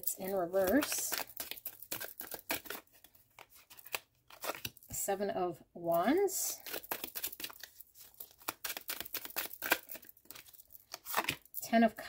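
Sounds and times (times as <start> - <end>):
cards being shuffled: 0.2 - 4.8, 6.5 - 11.6.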